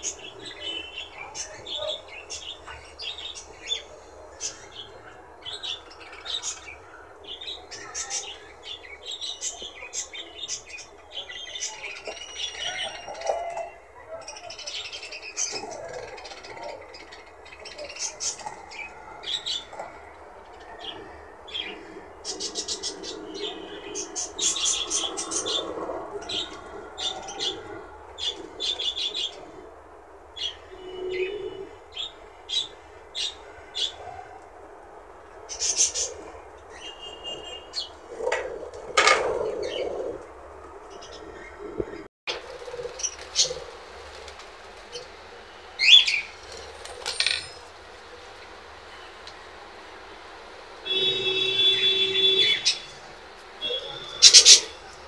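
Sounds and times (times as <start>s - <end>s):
budgerigars chirping: 53.7s - 54.8s.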